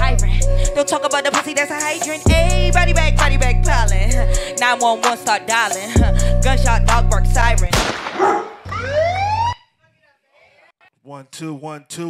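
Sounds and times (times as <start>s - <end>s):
hip-hop beat: 0.0s - 7.9s
dog bark: 8.2s - 8.6s
police siren whoop: 8.6s - 9.7s.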